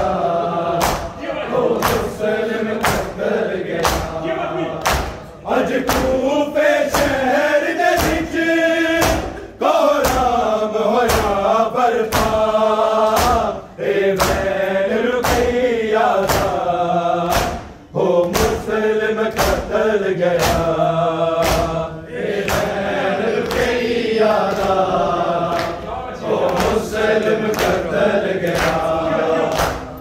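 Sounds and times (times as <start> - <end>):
men chanting in unison: 0.0 - 30.0.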